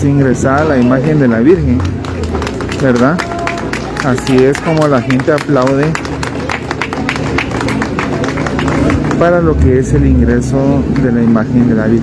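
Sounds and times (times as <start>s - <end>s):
crowd applauding: 0.3s - 9.9s.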